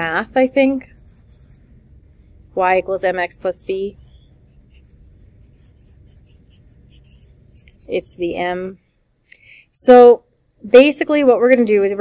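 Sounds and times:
pen scratching on paper: 0.8s - 1.7s, 3.2s - 8.4s.

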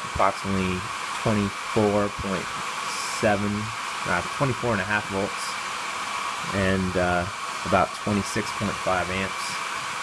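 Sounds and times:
faint steady whine: 0.0s - 10.0s
hair dryer blowing air: 0.0s - 10.0s.

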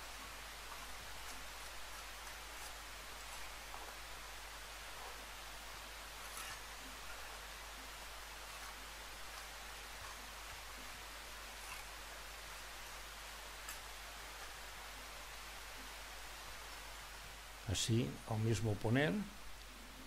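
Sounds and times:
steady hiss: 0.0s - 20.0s
trowel scraping mortar: 6.2s - 7.4s.

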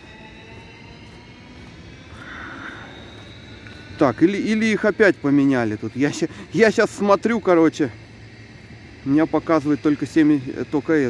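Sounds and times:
distant vehicle drone: 0.0s - 11.0s
faint high whining tones: 0.0s - 11.0s.

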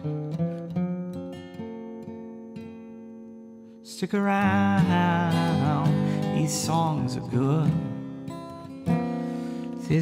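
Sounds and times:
solo guitar: 0.0s - 10.0s.

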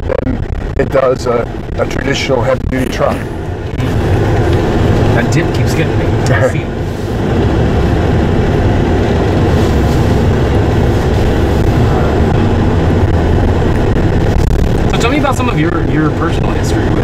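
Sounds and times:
pickup truck interior rumble: 0.0s - 17.0s
road and tyre noise: 0.0s - 17.0s.

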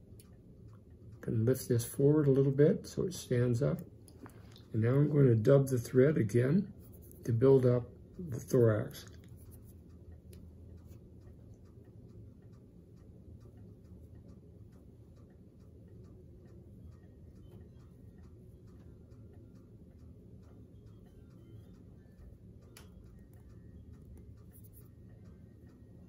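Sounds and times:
faint regular ticking: 0.0s - 26.0s
low room hum: 0.0s - 26.0s.

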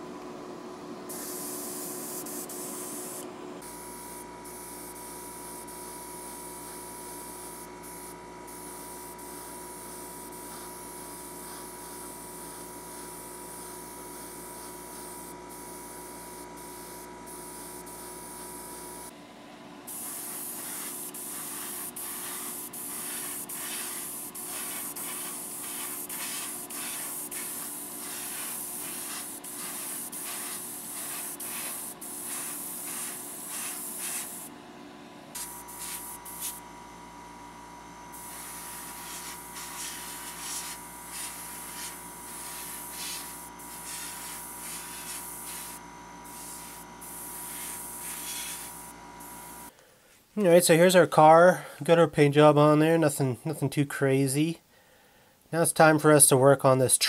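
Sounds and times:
airbrush hissing: 1.1s - 3.2s, 5.5s - 19.1s, 19.9s - 34.5s, 35.4s - 36.6s, 38.1s - 49.7s.

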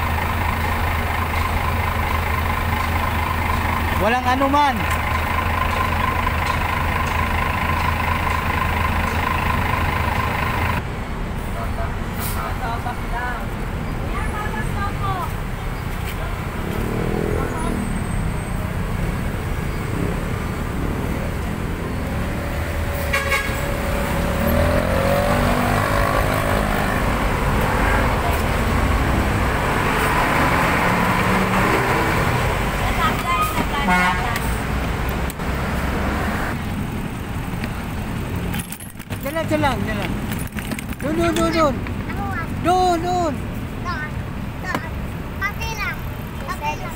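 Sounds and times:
steady engine hum: 0.0s - 12.0s
vehicle engines running: 0.0s - 46.9s
car horns honking: 22.9s - 24.6s, 33.0s - 34.7s.

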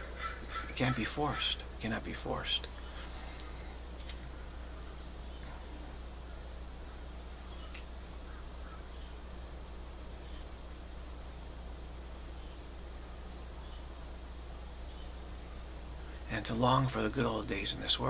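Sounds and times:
small bird chirping trills: 0.0s - 18.0s
steady low hum: 0.0s - 18.0s.

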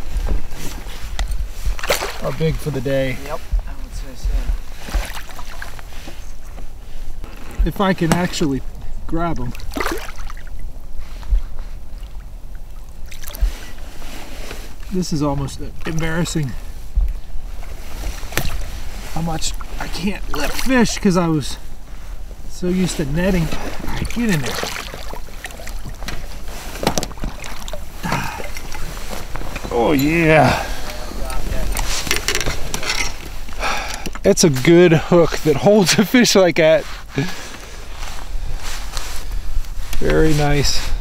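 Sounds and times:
water splashing: 1.6s - 3.4s, 4.8s - 6.0s, 9.3s - 10.7s, 11.9s - 14.1s, 18.0s - 21.6s, 22.6s - 32.4s
fishing gear clicks and clatter: 23.5s - 34.3s.

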